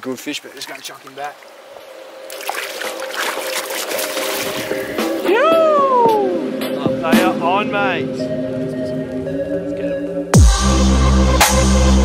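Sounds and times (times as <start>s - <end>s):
fish splashing in water: 0.8s - 5.2s.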